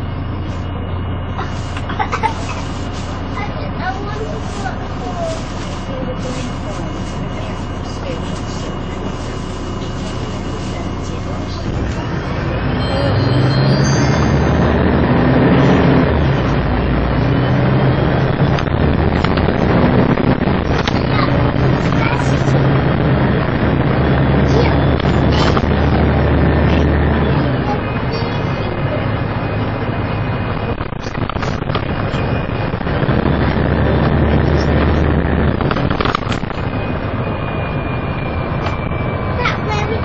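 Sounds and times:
bus diesel engine: 0.0 - 40.0.

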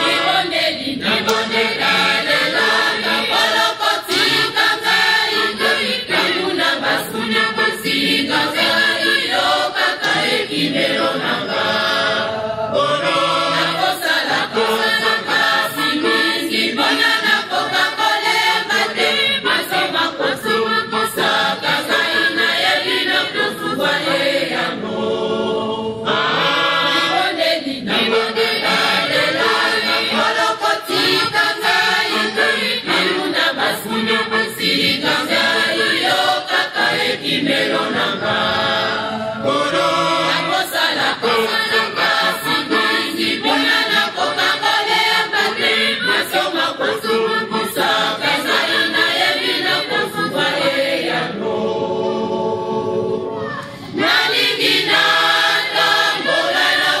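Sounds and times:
mixed choir singing in harmony: 0.0 - 57.0.

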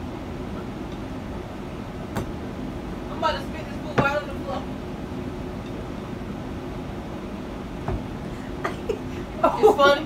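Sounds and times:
steady low hum with rumble: 0.0 - 10.0.

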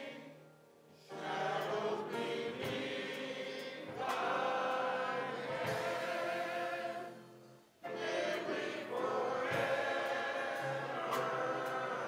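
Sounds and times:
men's chorus singing a hymn: 0.0 - 12.0.

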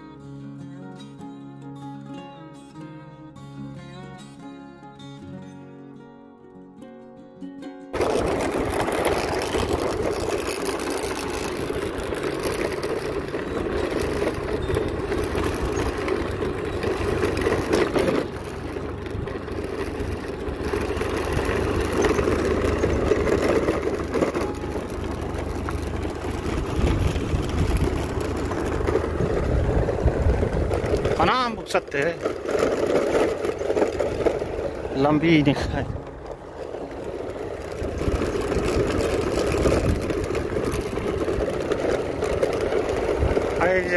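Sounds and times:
motorbike engine: 8.0 - 43.9
wind rush on microphone: 24.6 - 31.6, 37.8 - 43.9.

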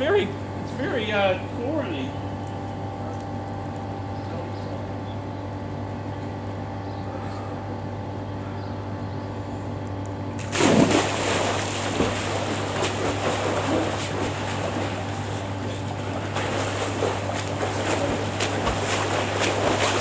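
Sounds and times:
steady low hum: 0.0 - 20.0
loud splash into pool: 10.4 - 15.1, 16.3 - 20.0
water churning and splashing: 10.4 - 20.0.

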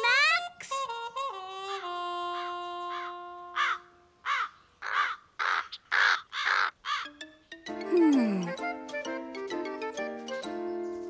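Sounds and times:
music: 0.0 - 3.6, 6.9 - 11.0
crow cawing: 2.9 - 7.2.

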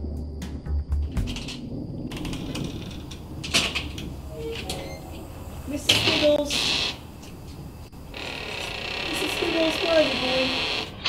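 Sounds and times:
steady high hiss: 1.3 - 11.0.

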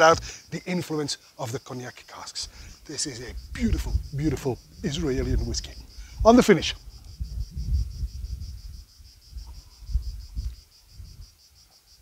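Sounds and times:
cicadas singing: 0.0 - 12.0
wind rumbling on microphone: 2.4 - 11.6.

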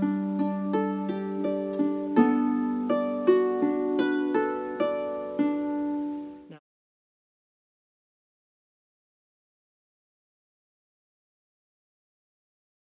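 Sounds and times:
harp plucked: 0.0 - 5.8.

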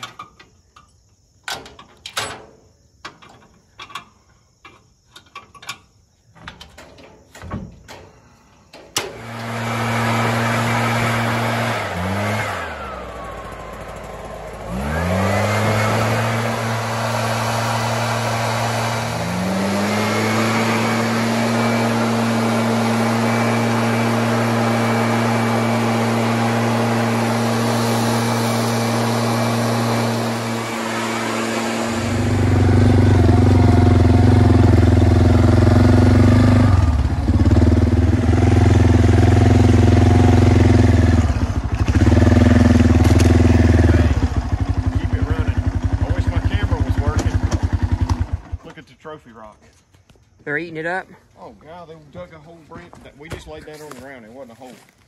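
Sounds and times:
leaf blower running: 8.9 - 48.8
atv engine running: 9.2 - 48.7.

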